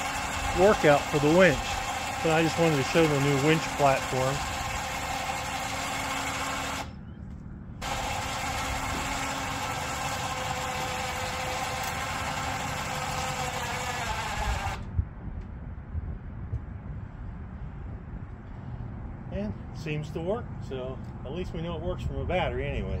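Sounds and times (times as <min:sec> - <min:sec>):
electric winch motor running: 0:00.0 - 0:07.0, 0:07.8 - 0:14.9.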